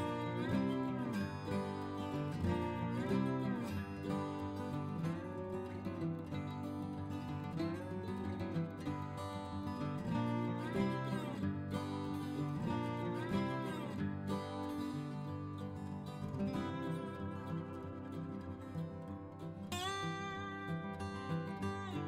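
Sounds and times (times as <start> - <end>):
upbeat country-folk music: 0.0 - 22.0.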